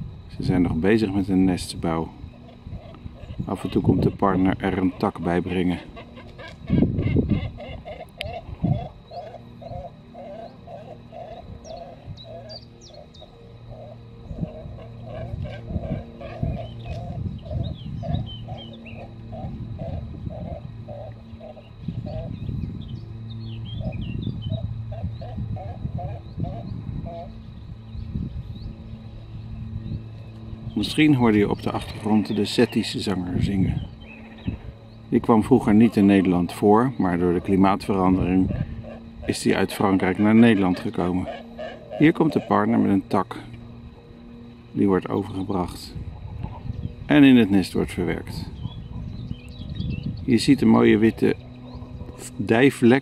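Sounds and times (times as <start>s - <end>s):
cormorants croaking: 0.0s - 53.0s
warbler singing: 0.0s - 53.0s.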